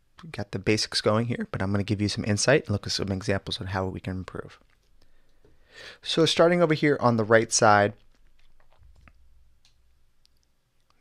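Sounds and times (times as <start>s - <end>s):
soft clicks: 8.0s - 11.0s.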